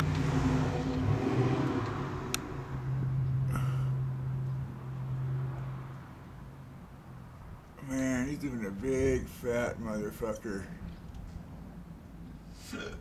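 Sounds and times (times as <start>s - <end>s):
low engine hum: 0.0s - 12.5s.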